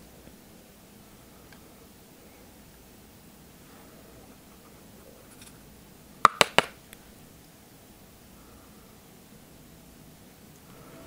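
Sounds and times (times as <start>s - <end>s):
brush tapping on palette: 6.3s - 6.7s.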